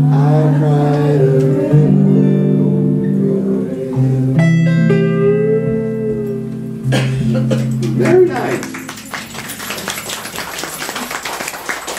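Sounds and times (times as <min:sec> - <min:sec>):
audience clapping: 0:07.5 - 0:11.9.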